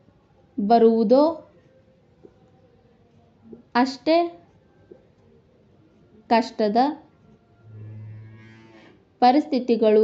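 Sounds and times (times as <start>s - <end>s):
low steady drone: 7.6s - 8.9s.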